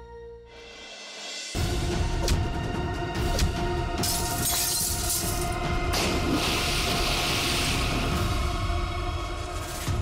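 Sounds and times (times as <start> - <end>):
dramatic background music: 0.1 - 10.0
glass shattering: 4.0 - 5.4.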